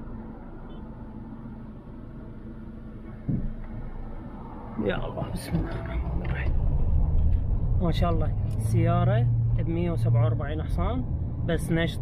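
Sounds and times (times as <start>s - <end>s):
car engine hum from cabin: 0.0s - 12.0s
road rumble: 0.0s - 12.0s.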